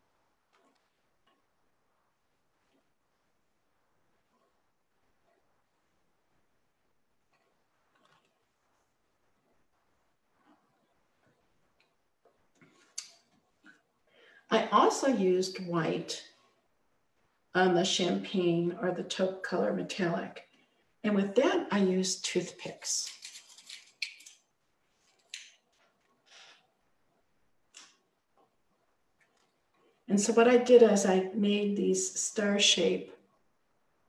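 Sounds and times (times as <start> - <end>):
faint soft sounds: 0.0 - 15.2.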